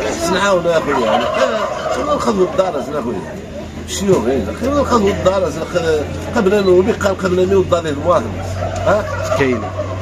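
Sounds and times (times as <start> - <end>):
fowl gobbling: 0.0 - 10.0.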